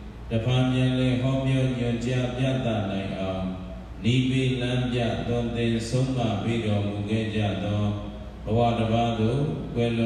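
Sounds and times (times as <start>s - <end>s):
man chanting over microphone: 0.3s - 10.0s.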